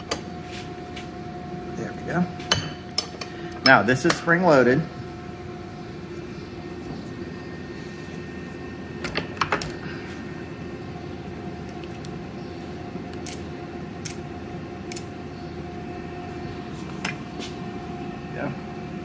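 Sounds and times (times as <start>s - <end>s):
steady background hum: 0.0s - 19.0s
sharp metal clicks: 13.1s - 14.2s, 14.8s - 15.1s.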